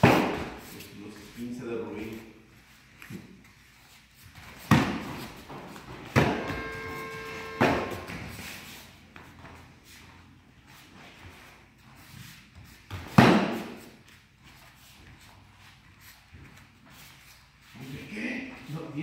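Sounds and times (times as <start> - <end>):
kicks slapping padded protectors: 0.0 - 0.7, 4.5 - 6.6, 12.9 - 13.9
steady pitched tone: 6.2 - 8.7.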